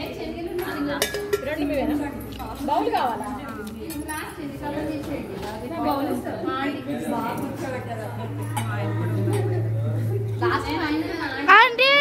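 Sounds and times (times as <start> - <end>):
chattering voices: 0.0 - 12.0
dishes clinking: 0.8 - 2.0.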